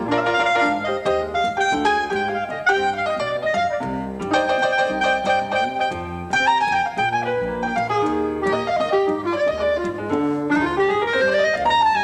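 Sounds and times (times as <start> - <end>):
clarinet long notes: 0.0 - 12.0
piano chords: 0.0 - 12.0
plucked double bass: 0.0 - 12.0.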